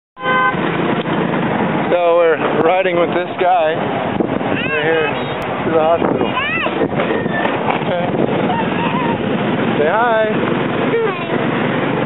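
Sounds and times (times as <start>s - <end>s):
vehicle horn honk: 0.2s - 0.7s
rushing road and wind noise: 0.2s - 12.0s.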